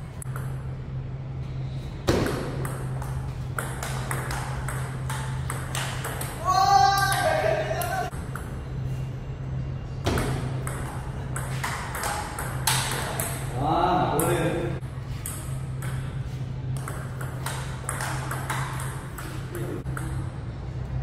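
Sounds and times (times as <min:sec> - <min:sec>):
person calling out: 0:06.4 - 0:08.1
table tennis ball clicking: 0:10.2 - 0:13.4.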